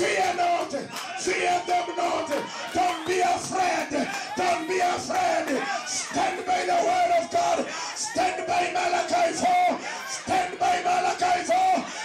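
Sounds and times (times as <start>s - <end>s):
crowd voices: 0.0s - 12.0s
man shouting through loudspeakers: 0.0s - 12.0s.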